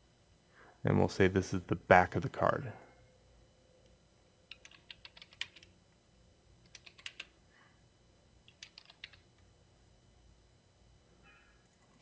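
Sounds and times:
faint keyboard typing: 4.5s - 5.7s, 6.6s - 7.4s, 8.4s - 9.5s, 11.6s - 12.0s.

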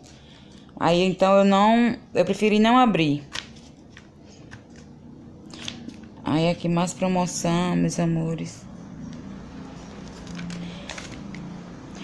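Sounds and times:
pages turning: 3.3s - 4.9s, 5.5s - 6.1s, 9.8s - 12.0s.

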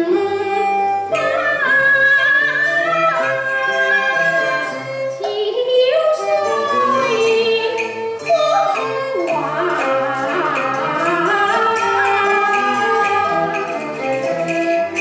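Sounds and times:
traditional instrumental accompaniment: 0.0s - 15.0s
person singing opera: 5.3s - 13.7s.

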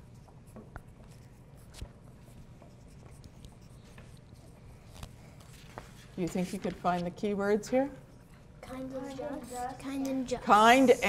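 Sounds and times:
pencils scratching on paper: 0.0s - 7.1s
low room hum: 0.0s - 11.0s.

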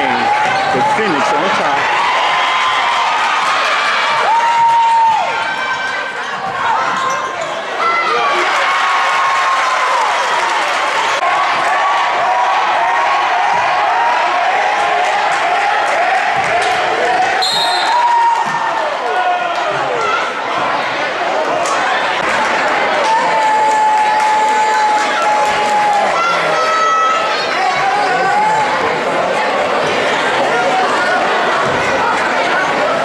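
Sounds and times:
crowd voices in large hall: 0.0s - 33.0s
referee's whistle: 17.4s - 18.2s.

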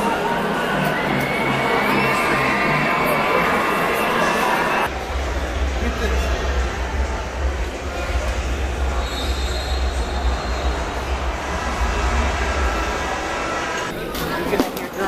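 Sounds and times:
indistinct voices: 0.0s - 15.0s.

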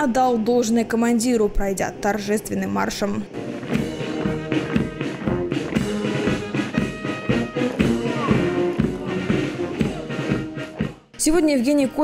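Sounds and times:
brass band playing a march: 3.3s - 11.0s.

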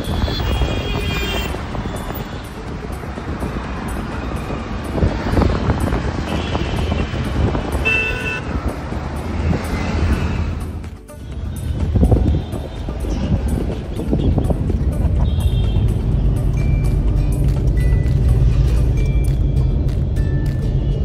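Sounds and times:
vehicle horn toot: 0.0s - 2.5s, 6.2s - 8.6s
car road noise rumble: 0.0s - 21.0s.

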